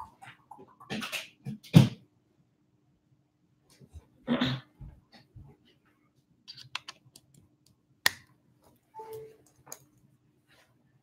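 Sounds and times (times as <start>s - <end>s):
brief tone: 9.0s - 9.4s.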